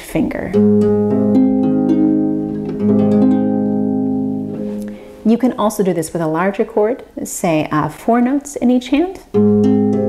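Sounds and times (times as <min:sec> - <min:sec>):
harp rolled chord: 0:00.6 - 0:05.2.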